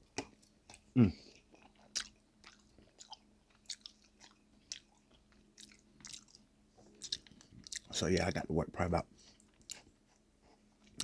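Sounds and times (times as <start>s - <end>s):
faint steady hum: 0.0s - 11.0s
chewing food: 0.1s - 8.0s, 9.3s - 10.2s, 10.8s - 11.0s.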